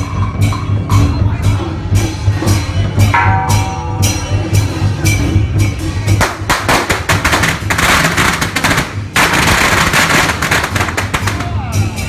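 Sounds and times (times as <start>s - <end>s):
drums and cymbals: 0.0s - 12.0s
firecrackers going off: 6.1s - 12.0s.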